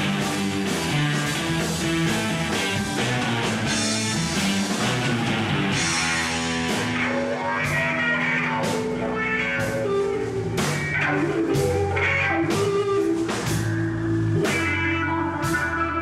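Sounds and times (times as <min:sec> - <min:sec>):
drum kit steady beat: 0:00.0 - 0:16.0
electric guitar: 0:00.0 - 0:16.0.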